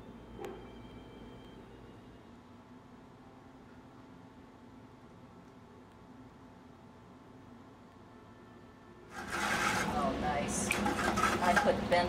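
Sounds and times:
metal whisk stirring liquid in bucket: 0:09.1 - 0:12.0.

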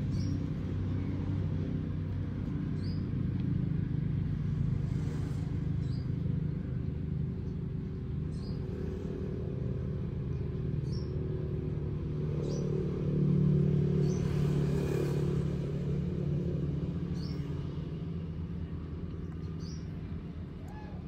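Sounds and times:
low motor hum: 0:00.0 - 0:21.0.

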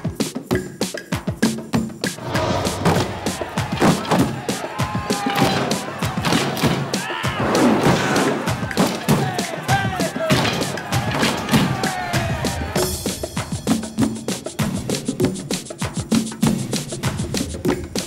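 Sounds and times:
group percussion jam: 0:00.0 - 0:18.0
voices calling out: 0:02.7 - 0:13.2.

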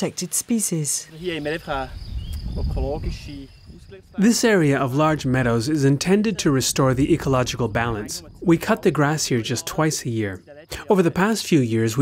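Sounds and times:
insects chirring: 0:00.0 - 0:12.0
low rumble: 0:01.5 - 0:09.5
people's voices: 0:02.6 - 0:12.0.

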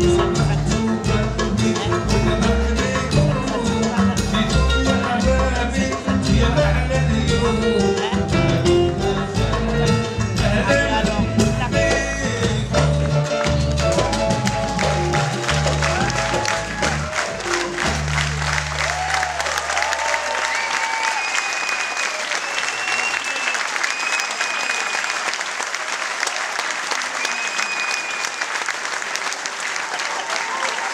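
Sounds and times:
live piano performance: 0:00.0 - 0:20.2
audience applause: 0:13.0 - 0:30.9.

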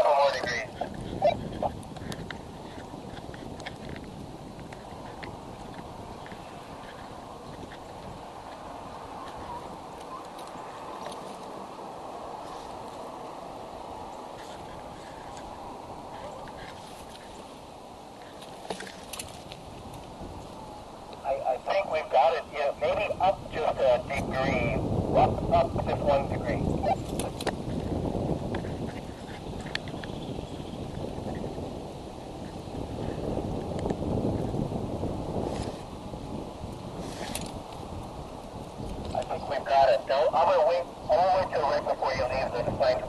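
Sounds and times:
steady rushing noise: 0:00.0 - 0:43.0.

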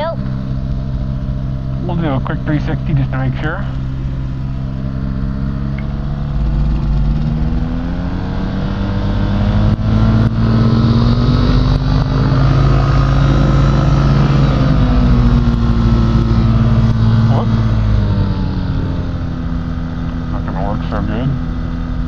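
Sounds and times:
ultralight aircraft engine running: 0:00.0 - 0:22.0.

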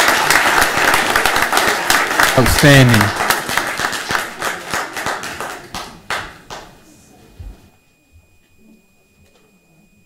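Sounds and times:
audience applause: 0:00.0 - 0:06.6.

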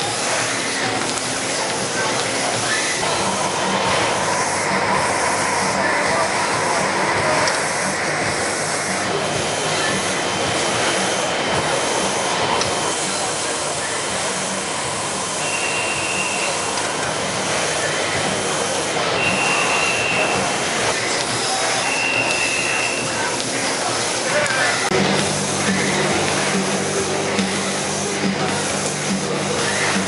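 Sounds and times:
crowd chatter: 0:00.0 - 0:30.0
machine noise: 0:00.0 - 0:30.0.

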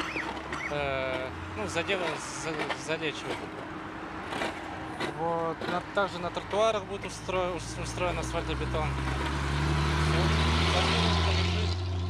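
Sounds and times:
heavy truck passing: 0:00.0 - 0:12.0
tyre and road noise: 0:00.0 - 0:12.0.

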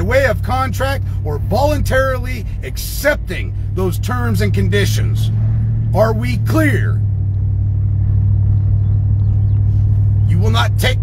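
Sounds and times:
car engine drone inside cabin: 0:00.0 - 0:11.0.

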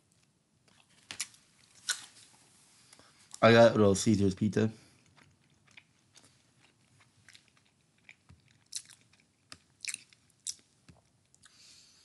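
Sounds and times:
person chewing food: 0:04.8 - 0:11.9.

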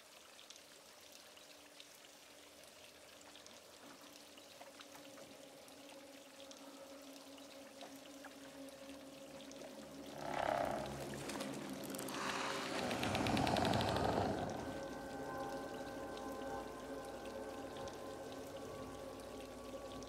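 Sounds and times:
water trickling and dripping: 0:00.0 - 0:20.0.

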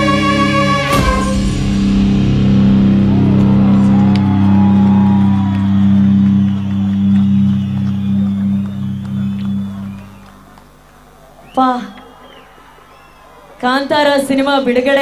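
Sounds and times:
live band holding low chord: 0:00.0 - 0:11.2.

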